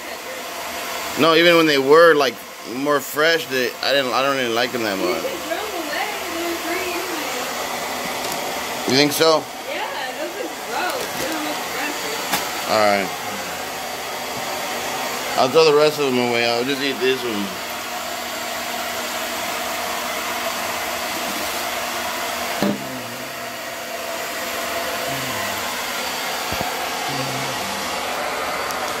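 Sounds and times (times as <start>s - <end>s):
air appliance blowing: 0.0s - 29.0s
fan whooshing: 0.1s - 29.0s
person speaking: 1.2s - 7.5s, 8.8s - 13.8s, 15.3s - 17.6s, 25.0s - 25.7s, 27.1s - 28.1s
knock: 22.6s - 22.9s.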